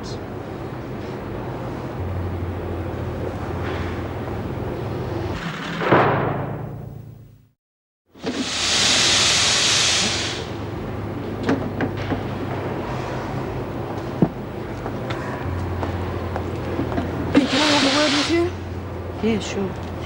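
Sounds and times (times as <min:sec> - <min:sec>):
low machine hum: 0:00.0 - 0:05.4, 0:10.4 - 0:20.0
steam hissing: 0:08.2 - 0:10.6, 0:17.3 - 0:18.6.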